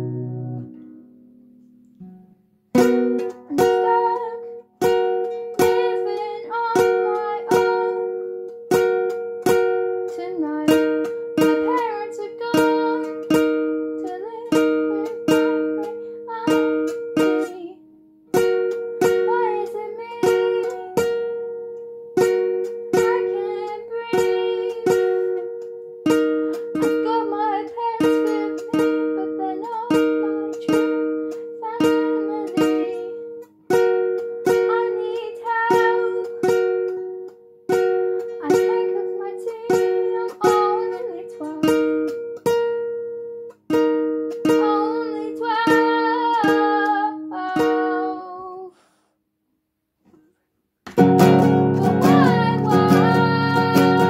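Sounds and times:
acoustic guitar strumming: 0.0 - 48.5, 50.9 - 54.0
girl singing: 2.8 - 21.3, 22.2 - 42.6, 43.7 - 48.9, 51.0 - 54.0.

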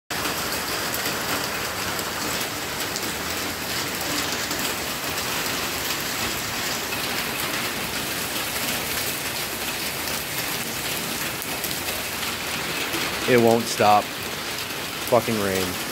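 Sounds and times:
rain falling: 0.1 - 15.9.

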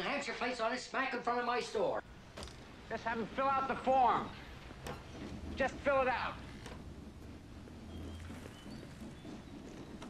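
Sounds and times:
steady low hum: 2.0 - 10.0.

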